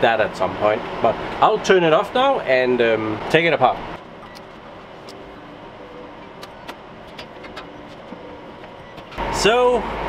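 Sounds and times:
server cooling fans whirring: 0.0s - 10.0s.

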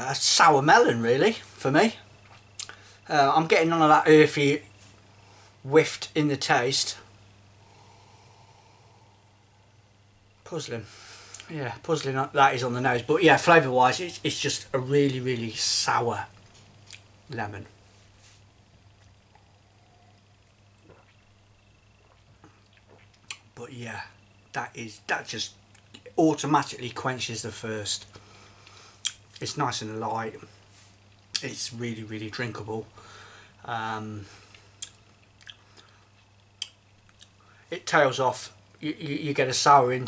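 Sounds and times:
low steady hum: 0.0s - 40.0s
mouth clicks and lip smacks: 2.2s - 2.8s, 16.8s - 17.1s, 22.0s - 23.5s, 34.8s - 37.4s
person swallowing: 19.3s - 23.5s.

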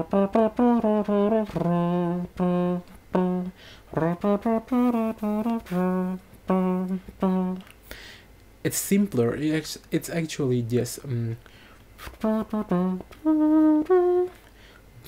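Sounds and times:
beatbox trumpet melody: 0.0s - 7.7s, 12.0s - 14.5s.

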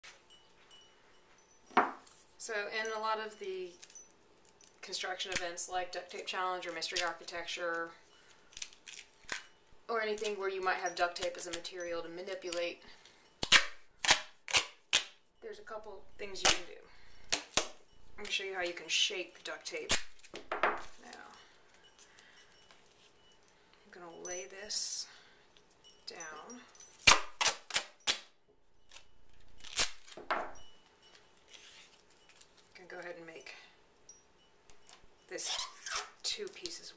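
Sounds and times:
duct tape ripping off roll: 13.4s - 15.2s, 27.0s - 28.3s, 29.6s - 30.2s
tape tearing snap: 13.4s - 15.2s, 27.0s - 28.3s, 29.6s - 30.2s.

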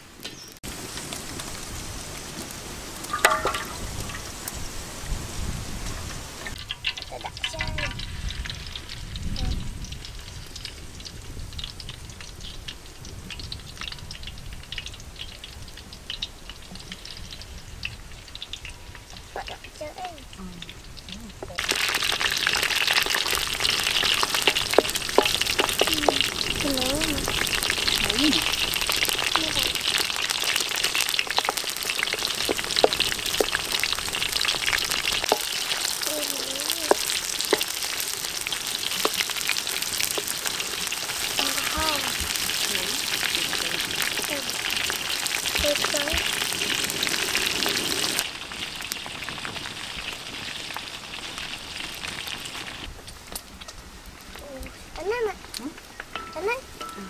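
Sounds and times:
food sizzling in hot oil: 0.0s - 57.0s
wooden spatula scraping wok: 21.4s - 48.3s.

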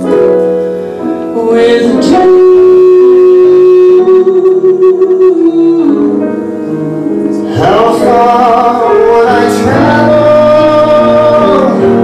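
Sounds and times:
jazz combo playing: 0.0s - 12.0s
vocal duet singing: 1.3s - 12.0s.

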